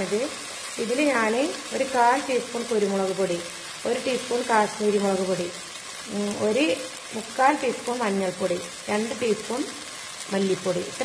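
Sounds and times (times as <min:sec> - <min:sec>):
masala sizzling in oil: 0:00.0 - 0:11.0
woman talking: 0:00.0 - 0:11.0.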